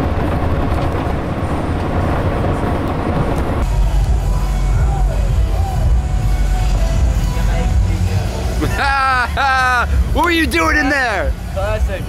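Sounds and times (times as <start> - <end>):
road noise inside vehicle: 0.0 - 12.0
bass-heavy music: 1.2 - 12.0.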